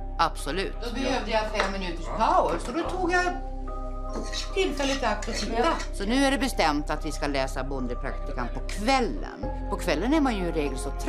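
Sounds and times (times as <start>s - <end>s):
background music with held notes: 0.0s - 11.0s
cutlery and dishes clinking: 4.1s - 6.1s.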